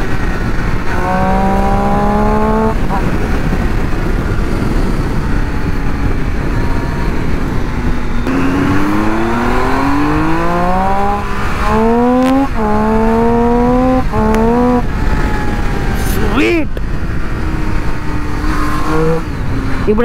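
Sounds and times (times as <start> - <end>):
motorcycle engine revving: 0.0 - 16.0, 17.1 - 20.0
wind rush: 0.0 - 19.9.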